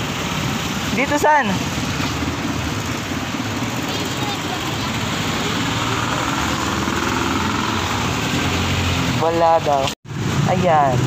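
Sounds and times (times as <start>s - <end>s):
vehicle engines running: 0.0s - 11.0s.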